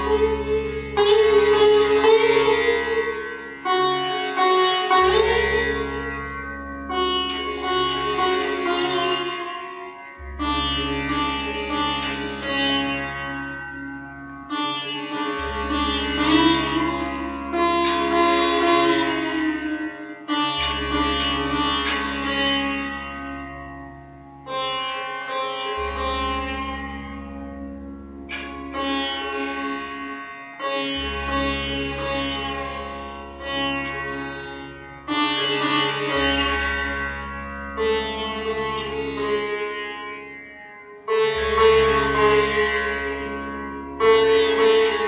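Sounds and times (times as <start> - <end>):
sitar plucked strokes: 0.0 - 45.0.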